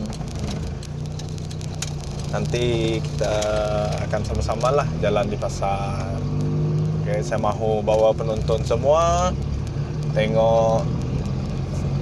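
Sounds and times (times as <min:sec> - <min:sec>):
engine and road hum: 0:00.0 - 0:12.0
light clicks and rattles: 0:00.0 - 0:12.0.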